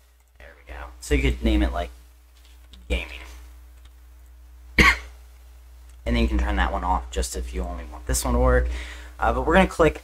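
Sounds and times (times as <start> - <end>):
man coughing: 4.8 - 5.2.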